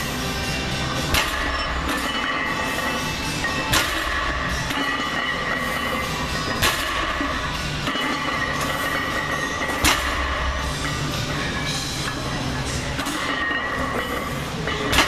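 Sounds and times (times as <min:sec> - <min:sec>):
background music: 0:00.0 - 0:15.0
barbell plates clanking: 0:01.0 - 0:12.2, 0:12.9 - 0:15.0.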